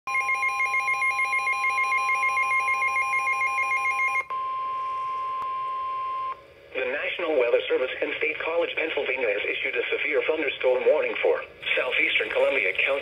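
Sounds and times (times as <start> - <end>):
steady alarm tone: 0.1 - 5.0.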